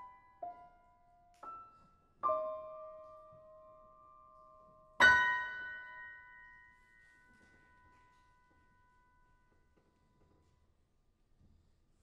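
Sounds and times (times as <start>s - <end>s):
grand piano chords ringing: 0.0s - 9.7s.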